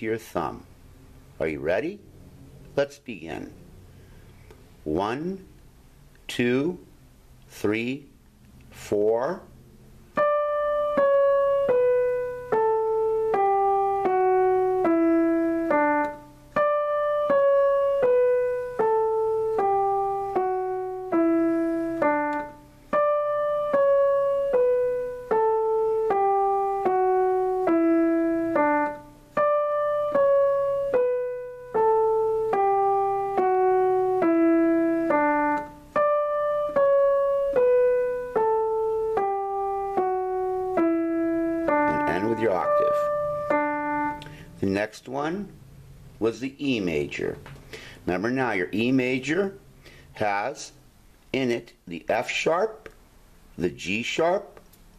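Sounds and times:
digital piano playing a scale: 0:09.0 - 0:45.6.

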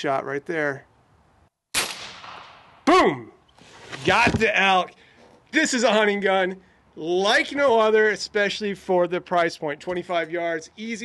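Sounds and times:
air rifle shot: 0:01.7 - 0:02.9.

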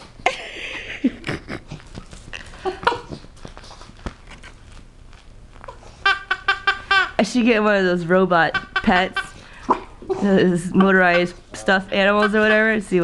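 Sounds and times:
person laughing: 0:00.2 - 0:01.8.

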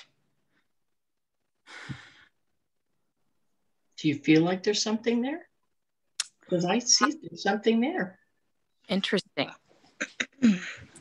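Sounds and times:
person sighing: 0:10.4 - 0:11.0.

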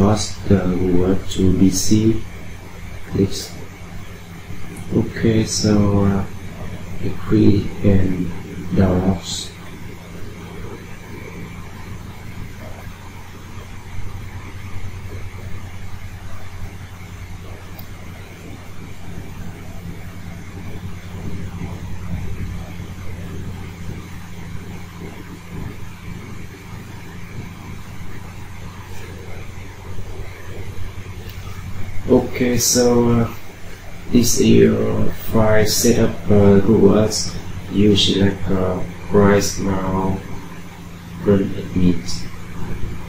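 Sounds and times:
even hiss: 0:00.0 - 0:43.0
steady low hum: 0:00.0 - 0:43.0.

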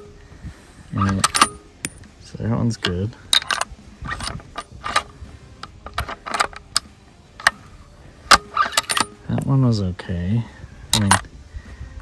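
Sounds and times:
brass case ejected: 0:01.0 - 0:02.0, 0:02.8 - 0:05.1, 0:08.3 - 0:09.2, 0:11.0 - 0:11.2
rifle bolt clicking and clacking: 0:01.0 - 0:02.1, 0:02.8 - 0:07.6, 0:08.3 - 0:09.2, 0:11.0 - 0:11.2.

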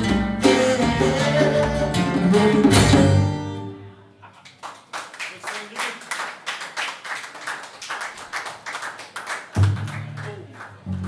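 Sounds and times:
rhythmic hand claps: 0:04.3 - 0:11.0.

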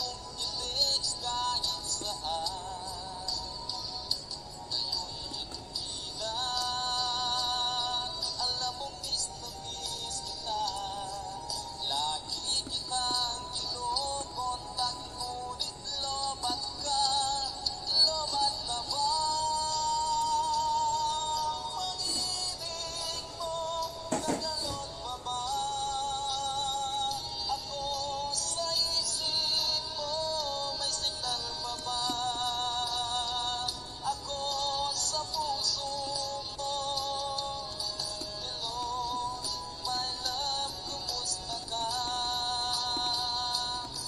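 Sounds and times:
backing track music: 0:00.0 - 0:44.0
person singing with vibrato: 0:00.0 - 0:44.0.

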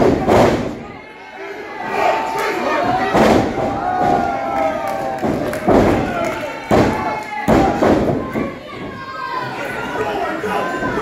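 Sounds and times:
thud: 0:00.0 - 0:00.8, 0:02.9 - 0:04.4, 0:05.2 - 0:09.0
crowd shouting in a hall: 0:00.0 - 0:11.0
children's voices: 0:08.2 - 0:11.0.

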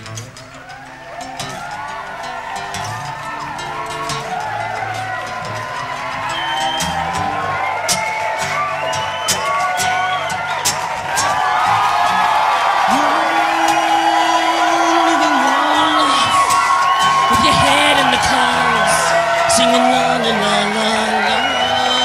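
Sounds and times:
acoustic guitar playing: 0:00.0 - 0:22.0
crowd voices and cheers: 0:00.0 - 0:22.0.

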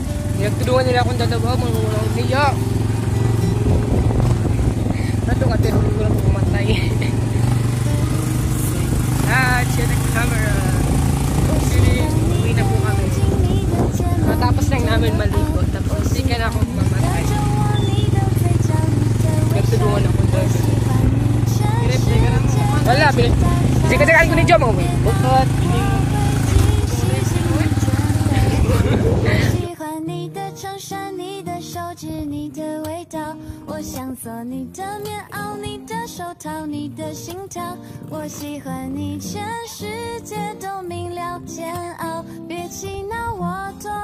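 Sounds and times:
small motorcycle engine running: 0:00.0 - 0:29.7
voices: 0:00.0 - 0:44.0.

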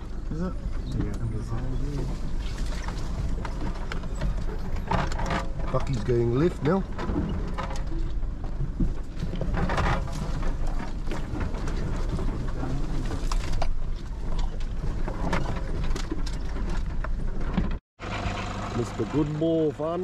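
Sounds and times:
vehicle interior rattling and knocking: 0:00.0 - 0:19.6
low engine rumble: 0:00.0 - 0:20.0.

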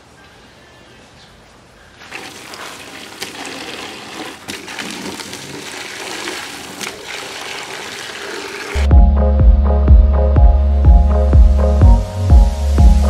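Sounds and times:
hose water splashing into basket: 0:02.0 - 0:08.8
loud music with a beat: 0:08.8 - 0:13.0.

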